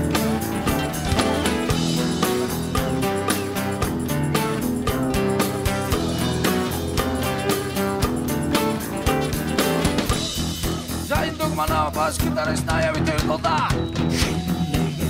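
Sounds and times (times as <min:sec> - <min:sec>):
acoustic rock band playing: 0:00.0 - 0:15.0.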